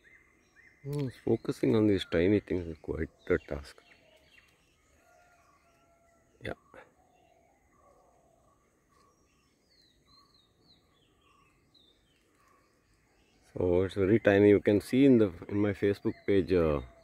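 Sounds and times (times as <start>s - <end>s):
higher curving bird chirps: 0.0s - 17.0s.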